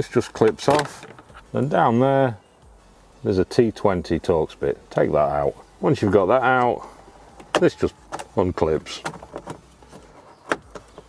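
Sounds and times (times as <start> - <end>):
plastic trim handling noises: 0.3 - 1.5.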